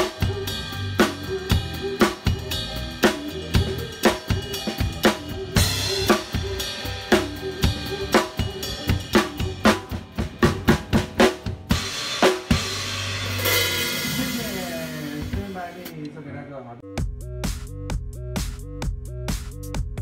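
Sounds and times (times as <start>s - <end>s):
drum kit fill: 0.0s - 16.2s, 16.9s - 20.0s.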